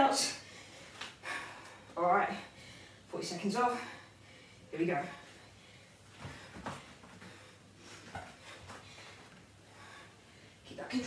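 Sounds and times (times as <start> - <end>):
soft movement on exercise mat: 0.2 - 11.0
woman breathing hard: 0.4 - 3.1, 3.7 - 10.7.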